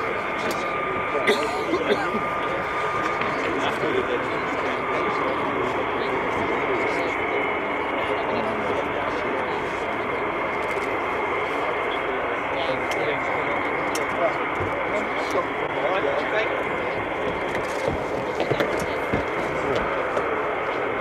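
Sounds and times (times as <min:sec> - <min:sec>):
jet engine whining: 0:00.0 - 0:21.0.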